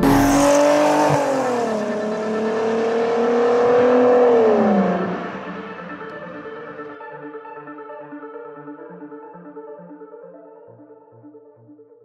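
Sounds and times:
engine accelerating hard: 0:00.0 - 0:07.0.

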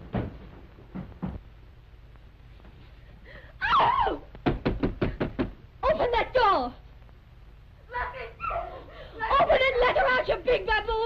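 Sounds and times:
knocking on door: 0:04.4 - 0:05.6.

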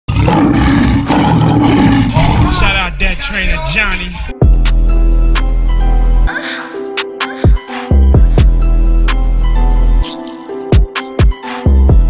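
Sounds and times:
lion roar: 0:00.1 - 0:02.8.

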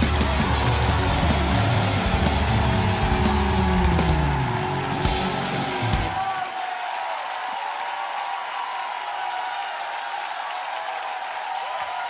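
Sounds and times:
band backing music: 0:00.0 - 0:06.4
studio audience applause: 0:00.0 - 0:12.0.

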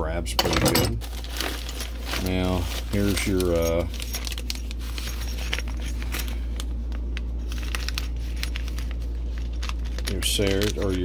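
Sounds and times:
steady low hum: 0:00.0 - 0:11.0
tools rattling in plastic toolbox: 0:00.4 - 0:06.4
plastic bags crinkling: 0:00.9 - 0:11.0.

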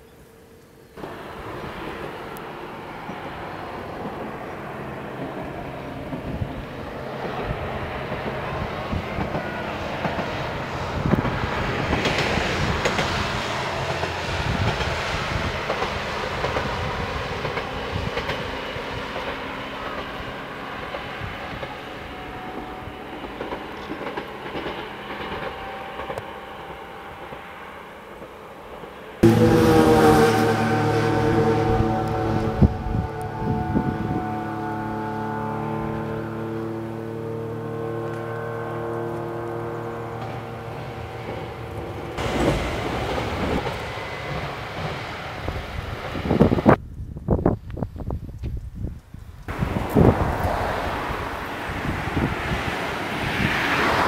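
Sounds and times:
railcar rumbling: 0:00.0 - 0:54.0
diesel engine drone: 0:00.9 - 0:11.9, 0:29.2 - 0:45.6.

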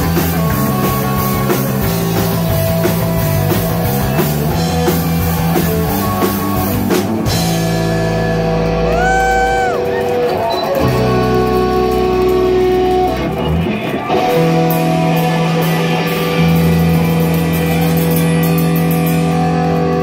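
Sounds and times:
rock band playing loud: 0:00.0 - 0:20.0.

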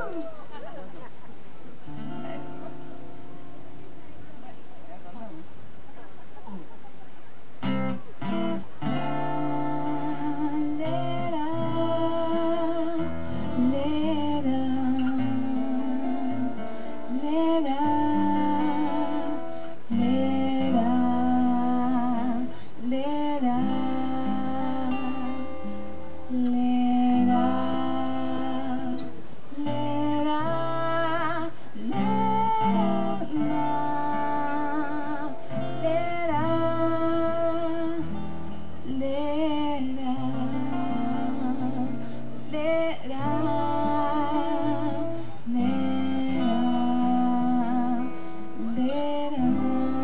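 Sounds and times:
woman singing with vibrato: 0:00.0 - 0:00.7, 0:07.6 - 0:50.0
acoustic guitar picking and strumming: 0:00.0 - 0:04.6, 0:07.6 - 0:50.0.

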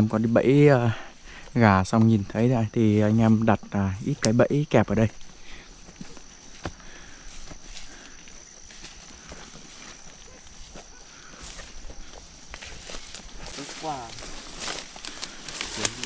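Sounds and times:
high-pitched insect drone: 0:00.0 - 0:16.0
stems snapping: 0:04.1 - 0:04.4, 0:12.5 - 0:16.0
footsteps through grass: 0:05.2 - 0:16.0.

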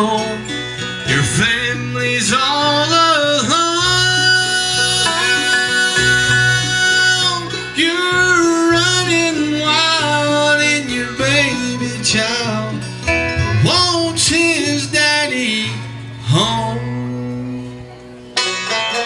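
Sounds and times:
acoustic guitar: 0:00.0 - 0:19.0
banjo: 0:00.0 - 0:19.0
dobro: 0:00.0 - 0:19.0
upright bass: 0:00.0 - 0:19.0.

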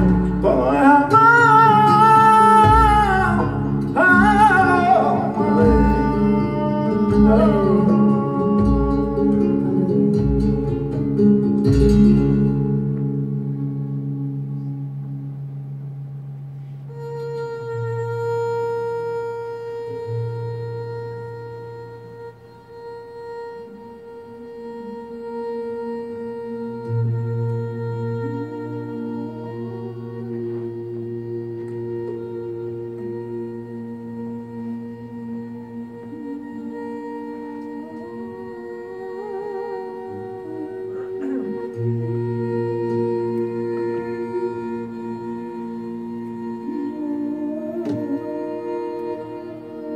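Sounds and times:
person singing flamenco: 0:00.0 - 0:14.3, 0:17.0 - 0:49.9
guitars playing: 0:00.0 - 0:49.9.

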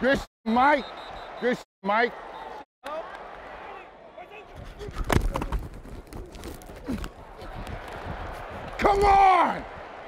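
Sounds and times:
stadium crowd noise: 0:00.0 - 0:10.0
feet running: 0:04.6 - 0:08.8.

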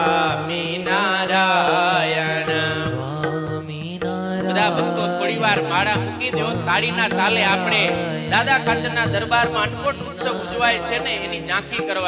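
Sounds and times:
person singing devotional chant: 0:00.0 - 0:12.0.

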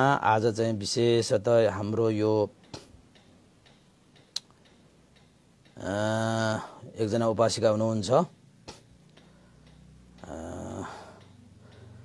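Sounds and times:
faint regular ticking: 0:00.0 - 0:12.0
sharp click: 0:02.6 - 0:05.3, 0:08.6 - 0:09.8.

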